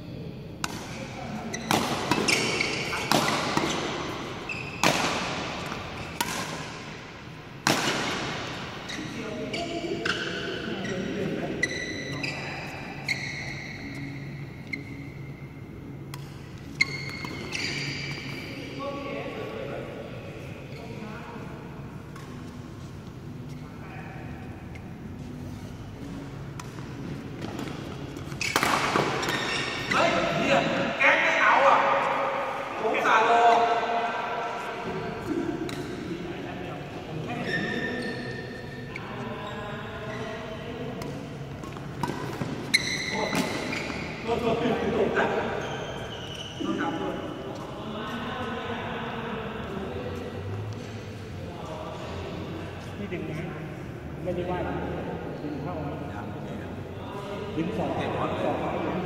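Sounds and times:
shoe squeaks: 0:00.9 - 0:05.2, 0:05.8 - 0:06.2, 0:08.8 - 0:15.6, 0:16.4 - 0:18.7, 0:23.2 - 0:23.8, 0:27.2 - 0:30.7, 0:37.2 - 0:47.5
racket striking shuttlecock: 0:01.6 - 0:04.0, 0:04.8 - 0:06.8, 0:07.6 - 0:08.4, 0:27.4 - 0:29.4
players' voices: 0:15.9 - 0:59.0.

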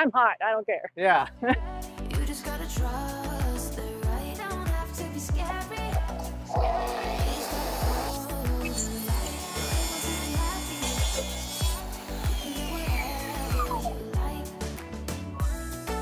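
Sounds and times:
music with steady beat: 0:01.5 - 0:16.0
saw blade winding down: 0:06.1 - 0:14.3
circular saw cutting wood: 0:06.1 - 0:14.4.

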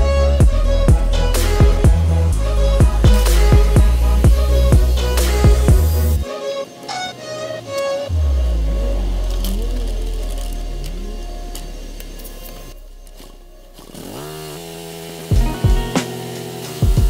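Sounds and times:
deep bass note: 0:00.0 - 0:06.2, 0:08.1 - 0:14.0
strong bass beats: 0:00.0 - 0:06.2, 0:15.3 - 0:17.0
wavering melodic line: 0:00.0 - 0:14.2, 0:15.2 - 0:17.0.

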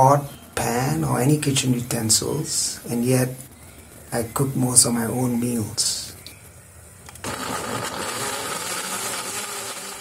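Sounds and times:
blender running: 0:07.2 - 0:10.0.

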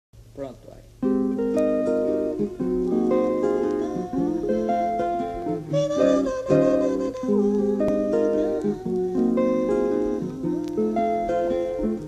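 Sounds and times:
acoustic guitar playing: 0:00.8 - 0:12.0.

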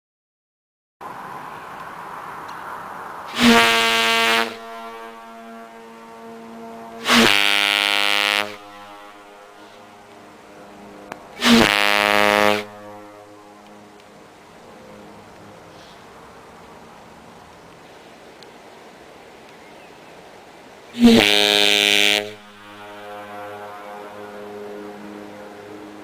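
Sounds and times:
ship horn blasts: 0:03.3 - 0:15.2, 0:21.0 - 0:26.0.

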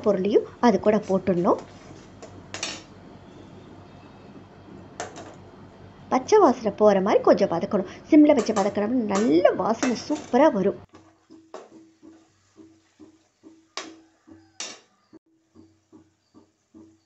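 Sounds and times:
woman speaking: 0:00.0 - 0:01.7, 0:06.1 - 0:10.9
spatula knocking on steel bowl: 0:08.3 - 0:10.4, 0:11.3 - 0:14.8.

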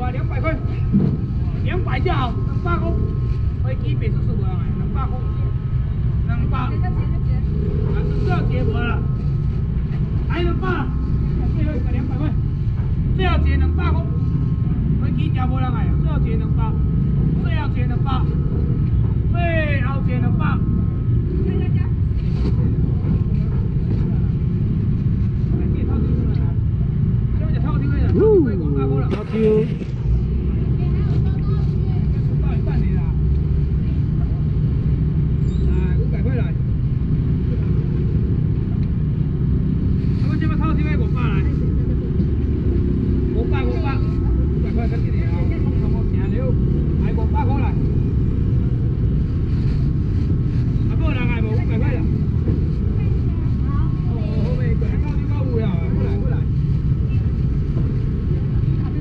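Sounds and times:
low rumble: 0:00.0 - 0:59.0
voices of vendors and shoppers: 0:00.0 - 0:59.0.

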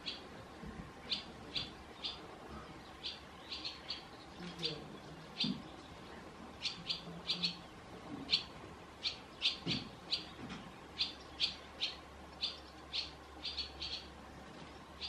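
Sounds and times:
swallows chirping: 0:00.0 - 0:14.2.

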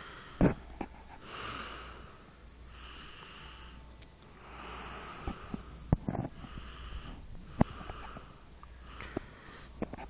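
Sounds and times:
person breathing softly: 0:00.0 - 0:10.0.

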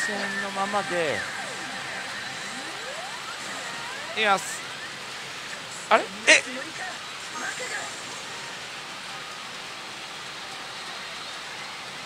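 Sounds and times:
rising sweep effect: 0:00.0 - 0:05.8.

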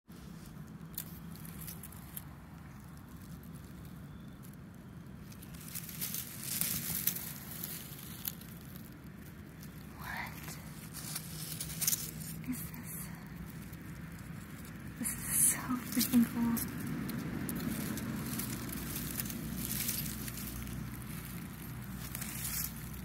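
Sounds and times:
crackles and rustles: 0:00.1 - 0:23.0
low hum: 0:00.2 - 0:23.0.

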